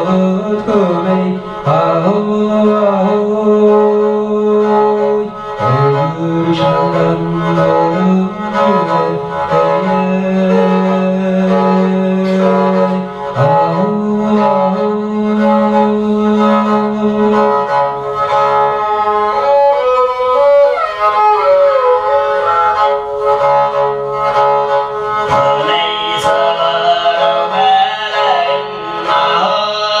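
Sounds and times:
bowed fiddle playing: 0.0 - 30.0.

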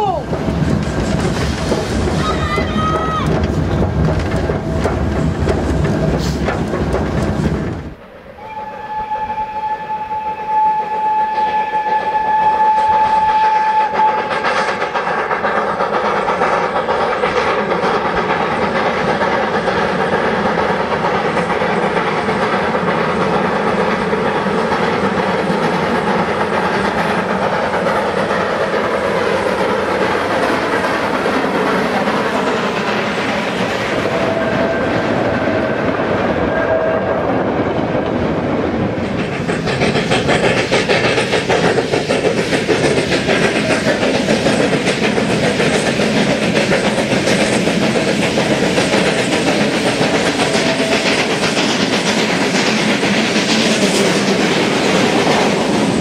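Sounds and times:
steam locomotive working uphill: 0.0 - 56.0
wagon wheels clattering on rail joints: 0.2 - 7.9
steam whistle long note: 8.4 - 14.3.

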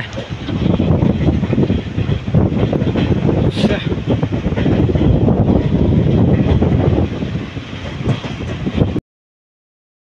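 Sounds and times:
train wheels rumbling: 0.0 - 9.0.

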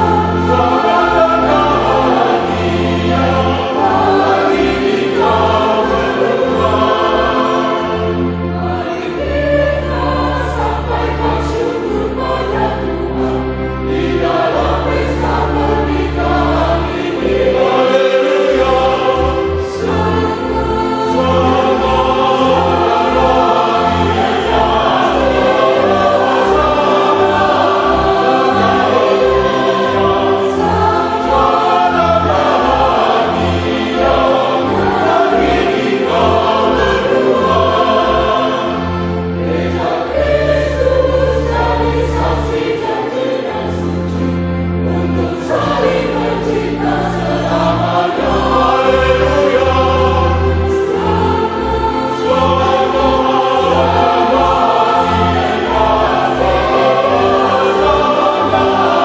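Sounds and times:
choir singing: 0.0 - 59.0
instrumental accompaniment: 0.0 - 59.0.

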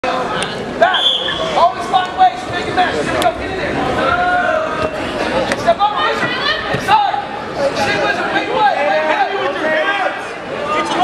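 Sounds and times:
spectators chattering and shouting: 0.0 - 11.0.

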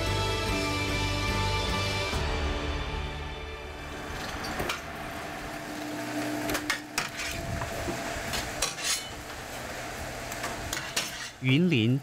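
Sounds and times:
conveyor machinery humming: 3.2 - 10.8.

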